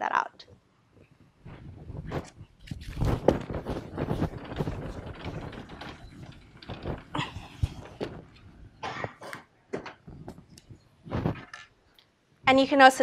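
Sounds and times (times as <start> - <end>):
paper rustling: 2.1 - 8.5.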